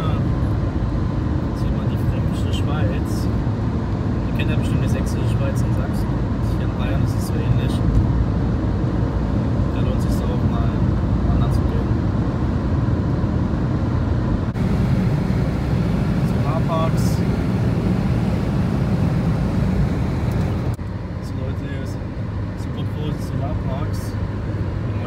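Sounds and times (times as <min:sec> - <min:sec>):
road and engine noise in car: 0:00.0 - 0:25.0.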